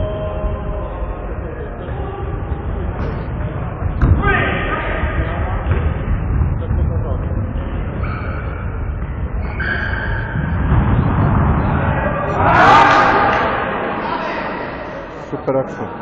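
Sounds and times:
players shouting in hall: 12.1s - 15.2s.

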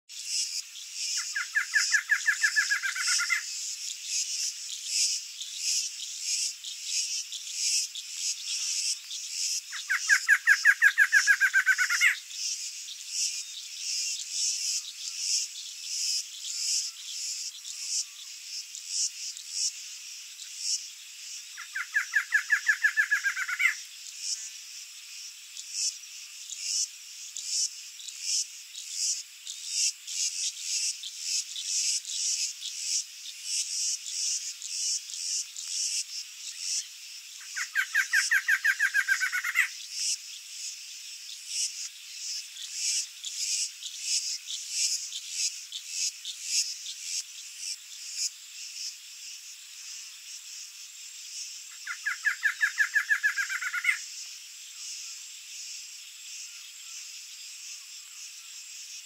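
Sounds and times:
pulsing insect chorus: 0.1s - 59.0s
bird singing rapid notes: 0.4s - 3.5s, 4.1s - 18.0s, 21.6s - 23.8s, 34.1s - 40.2s, 51.7s - 54.0s.

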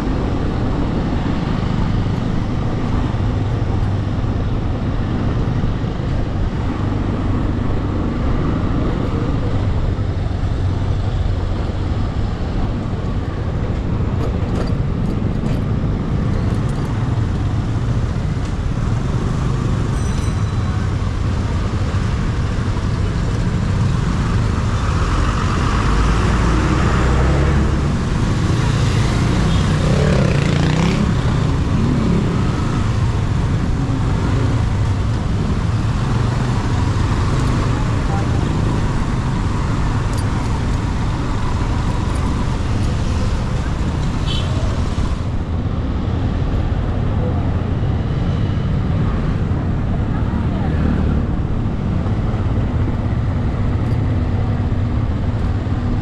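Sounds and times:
road noise: 0.0s - 56.0s.

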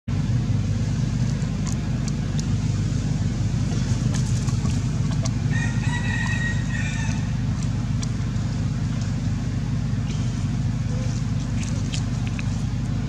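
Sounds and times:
steady low rumble: 0.1s - 13.0s.

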